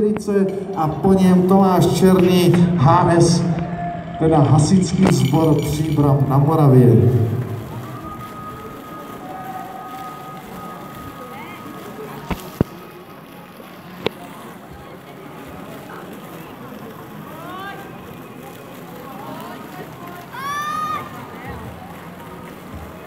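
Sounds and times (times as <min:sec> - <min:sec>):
faint distant voices: 0:00.0 - 0:23.0
steady background noise: 0:00.0 - 0:23.0.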